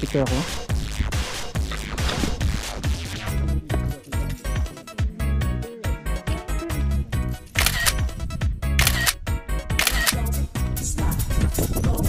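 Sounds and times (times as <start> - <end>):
music with heavy beat: 0.0 - 6.6.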